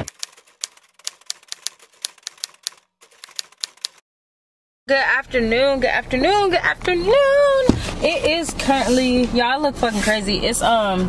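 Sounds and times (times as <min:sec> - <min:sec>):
keys typing clicks: 0:00.0 - 0:04.0.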